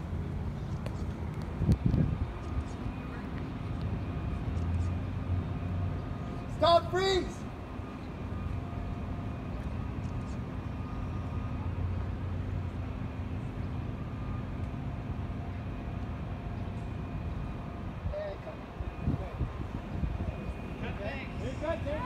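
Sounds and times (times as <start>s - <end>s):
low engine hum: 0.0s - 22.0s.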